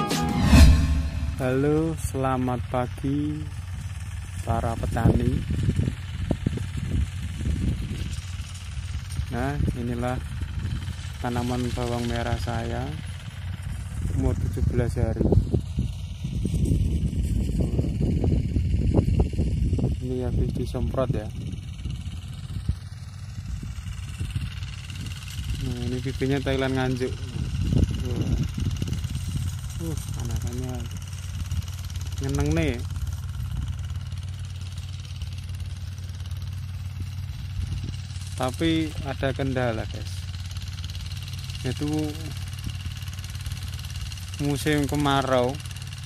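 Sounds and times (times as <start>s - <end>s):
small engine running: 0.0s - 46.0s
wind buffeting microphone: 4.8s - 8.4s, 13.7s - 25.8s, 27.1s - 31.9s, 33.3s - 33.9s, 37.0s - 38.2s.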